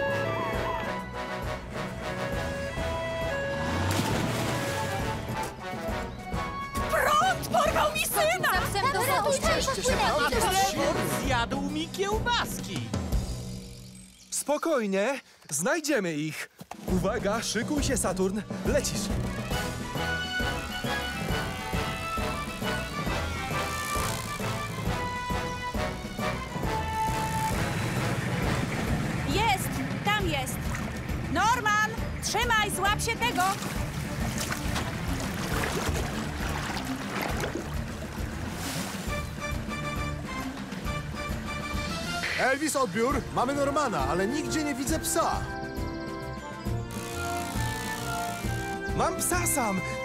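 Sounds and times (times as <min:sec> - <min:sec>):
cartoon background music: 0:00.0 - 0:14.5, 0:16.9 - 0:50.0
vehicle engine low rumble: 0:26.9 - 0:33.0.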